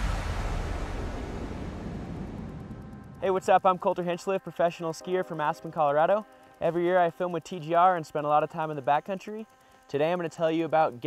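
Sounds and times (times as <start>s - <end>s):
rushing whoosh with deep rumble: 0.0s - 3.3s.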